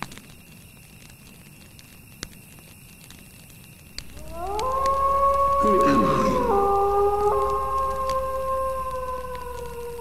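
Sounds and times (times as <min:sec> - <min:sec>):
wailing tone gliding upward: 0:04.1 - 0:10.0
low voice speaking: 0:05.6 - 0:06.7.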